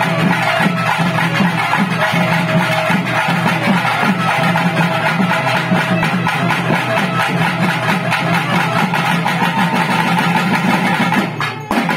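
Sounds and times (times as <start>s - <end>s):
fast steady drumming: 0.0s - 11.9s.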